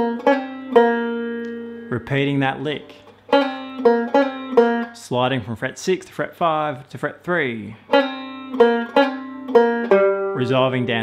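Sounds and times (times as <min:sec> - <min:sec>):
banjo picking single notes: 0:00.0 - 0:05.2, 0:07.5 - 0:11.0.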